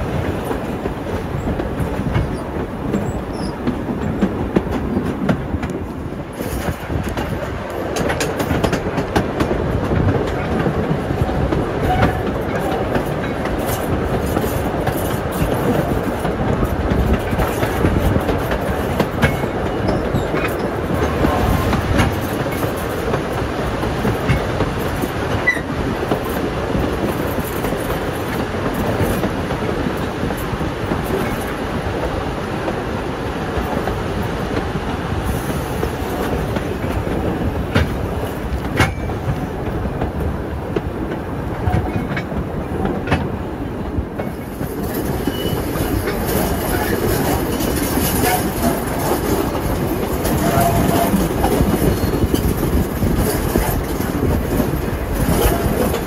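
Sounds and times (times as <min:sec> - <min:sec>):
train wheels rumbling on track: 0:00.0 - 0:56.0
sharp rail clicks: 0:00.1 - 0:32.8, 0:35.3 - 0:56.0.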